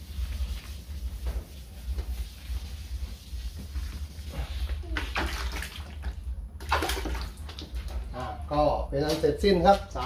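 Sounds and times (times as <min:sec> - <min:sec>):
wet sandpaper scrubbing plastic: 0:00.0 - 0:05.0.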